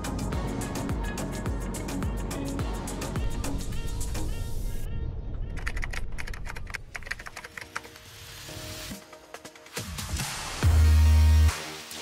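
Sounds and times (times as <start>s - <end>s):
keyboard typing clicks: 5.5s - 8.1s.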